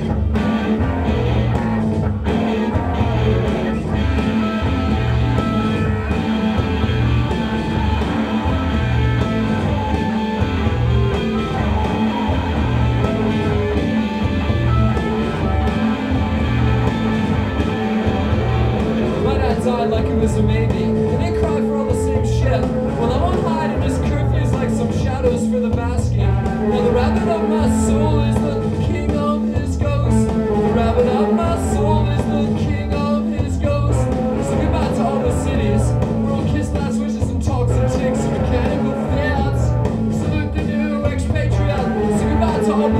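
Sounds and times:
held bass notes: 0:00.0 - 0:42.9
rock band guitar playing: 0:00.0 - 0:42.9.

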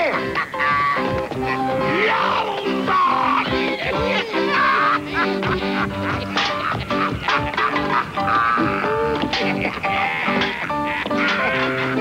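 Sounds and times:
square-dance tune on concertina: 0:00.0 - 0:12.0
man shouting hoarsely: 0:01.9 - 0:05.0.

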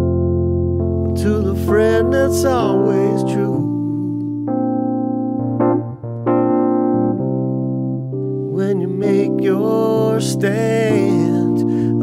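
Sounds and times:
electronic keyboard piano chords: 0:00.0 - 0:12.0.

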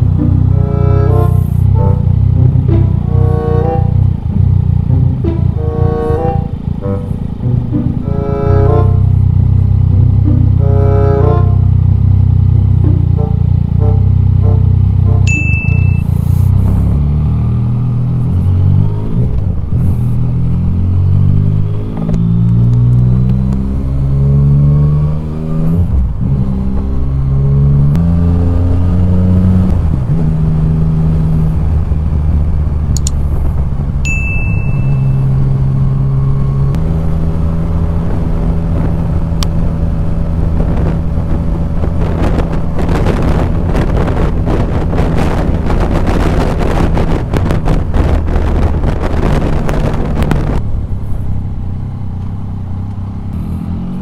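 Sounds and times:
background music: 0:00.0 - 0:11.7, 0:12.8 - 0:16.0
motorcycle engine running: 0:00.0 - 0:54.0.

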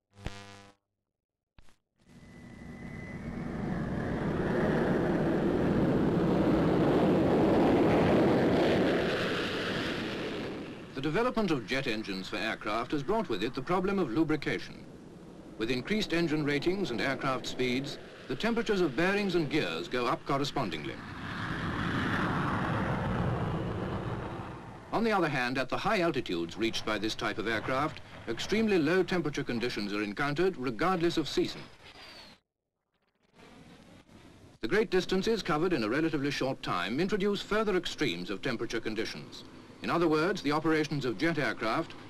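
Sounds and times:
thin high whine: 0:02.1 - 0:05.5
jet aircraft taking off: 0:02.2 - 0:25.2.

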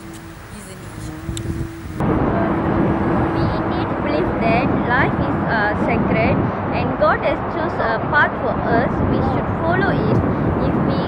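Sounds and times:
steady rushing background noise: 0:00.0 - 0:11.0
woman speaking: 0:00.4 - 0:01.4, 0:02.3 - 0:11.0.

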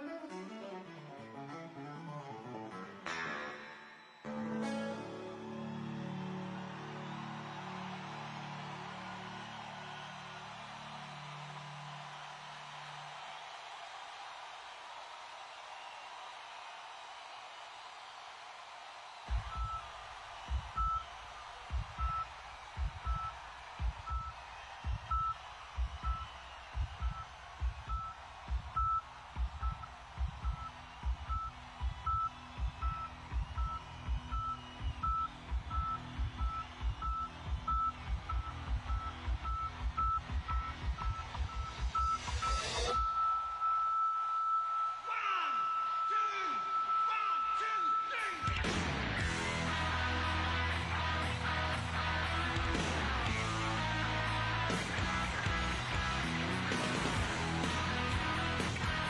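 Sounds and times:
audience noise: 0:00.0 - 0:59.0.

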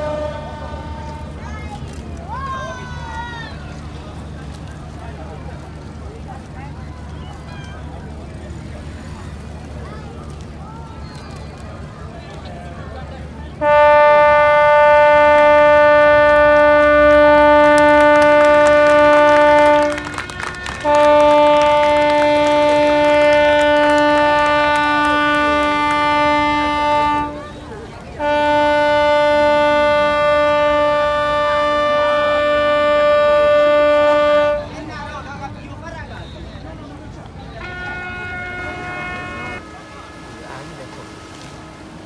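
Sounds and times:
boat horn blasts: 0:00.0 - 0:02.0, 0:13.5 - 0:35.3, 0:36.0 - 0:42.0.

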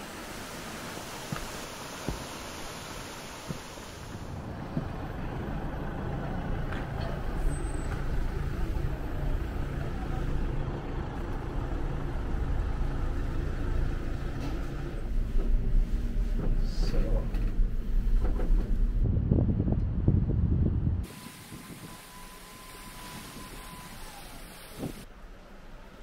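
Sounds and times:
cable car machinery humming: 0:00.0 - 0:19.0, 0:21.0 - 0:26.0.

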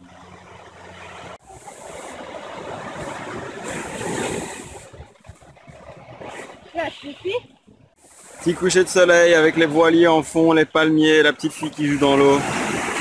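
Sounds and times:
small waves breaking on beach: 0:00.0 - 0:13.0.

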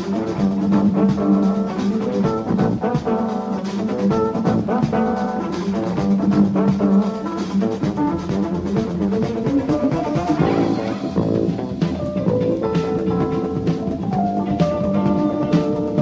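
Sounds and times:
bass guitar: 0:00.0 - 0:16.0
drum kit: 0:00.0 - 0:16.0
electric guitar: 0:00.0 - 0:16.0.

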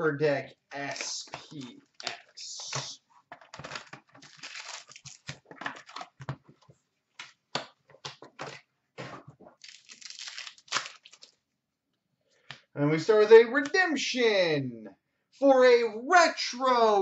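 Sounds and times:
plastic wrapper crinkling and tearing: 0:03.4 - 0:06.3, 0:09.6 - 0:11.4.

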